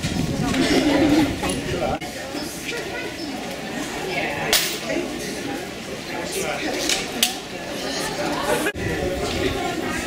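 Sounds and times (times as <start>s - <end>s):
murmur of voices on street: 0.0s - 10.0s.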